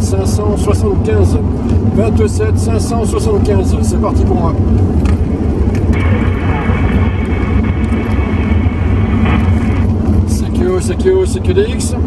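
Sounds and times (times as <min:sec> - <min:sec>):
car engine and road rumble: 0:00.0 - 0:12.0
radio static hiss: 0:05.9 - 0:11.2.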